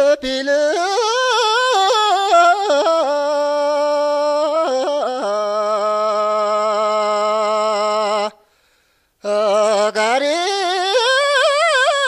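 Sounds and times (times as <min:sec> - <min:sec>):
person singing unaccompanied: 0:00.0 - 0:08.4, 0:09.2 - 0:12.0.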